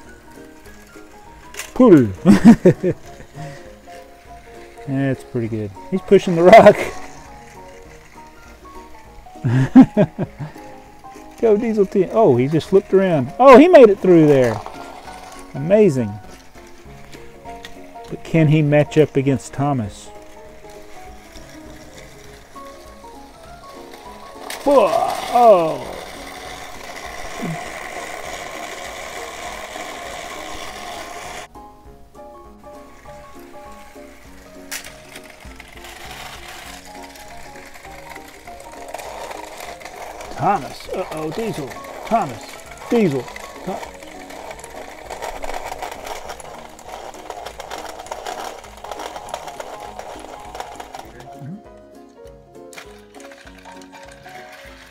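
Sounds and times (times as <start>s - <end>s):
quiet background music: 0.0s - 54.9s
toy train motor whirring: 0.0s - 54.9s.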